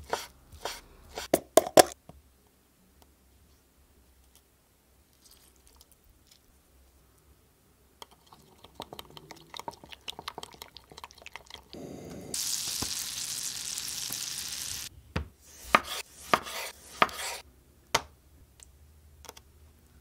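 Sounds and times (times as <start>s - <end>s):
bread sizzling in frying pan: 12.3s - 14.9s.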